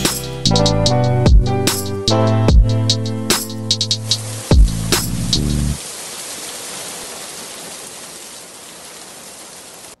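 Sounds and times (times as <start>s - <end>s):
steady hiss: 2.9s - 10.0s.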